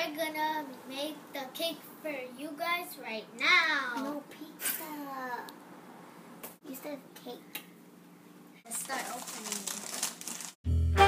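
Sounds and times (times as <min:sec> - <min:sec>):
plastic packaging crinkling: 0:08.7 - 0:10.6.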